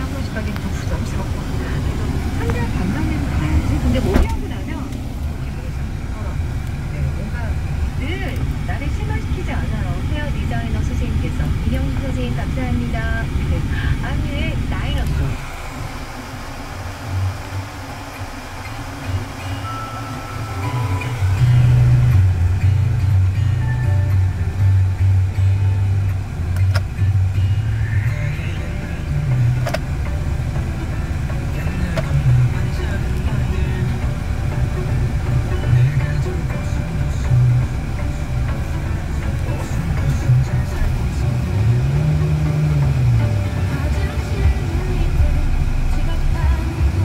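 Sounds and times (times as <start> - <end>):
background music: 0.0 - 47.0
car engine idling: 0.0 - 47.0.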